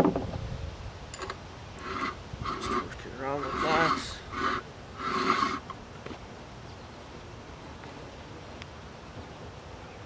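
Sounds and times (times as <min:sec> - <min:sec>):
metal scrape: 0:01.2 - 0:05.8.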